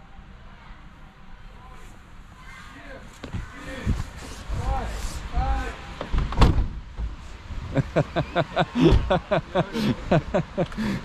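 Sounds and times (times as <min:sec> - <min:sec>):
people talking: 0:08.1 - 0:10.3.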